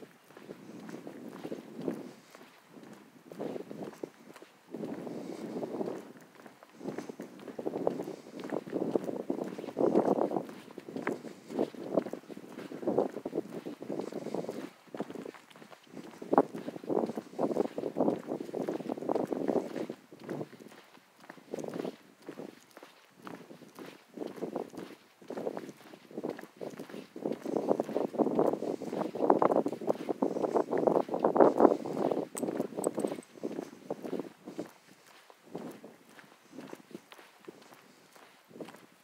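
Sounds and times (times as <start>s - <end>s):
footsteps on asphalt: 0.0s - 39.0s.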